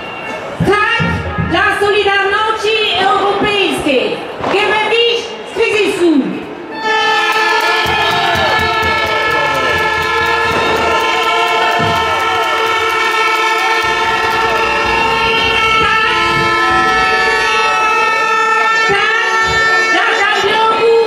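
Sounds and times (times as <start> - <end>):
woman speaking over loudspeaker: 0.6 - 6.4, 18.7 - 21.0
horns blasting: 6.7 - 21.0.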